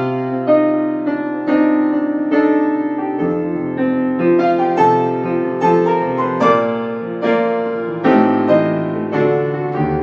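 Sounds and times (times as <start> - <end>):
grand piano playing: 0.0 - 10.0.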